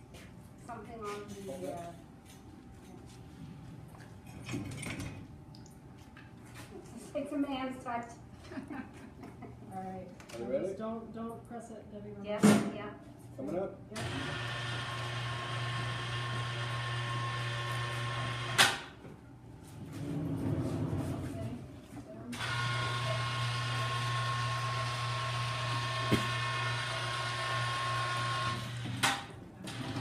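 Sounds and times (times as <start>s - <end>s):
electric hoist motor humming: 14.0s - 18.9s, 22.3s - 30.0s.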